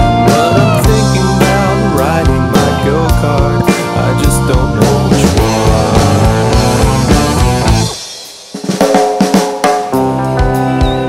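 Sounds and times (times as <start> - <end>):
drum fill: 0.0 - 11.0
rock band playing: 0.0 - 11.0.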